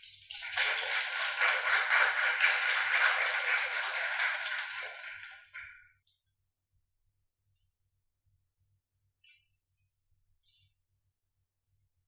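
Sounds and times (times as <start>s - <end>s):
audience applauding: 0.3s - 5.6s.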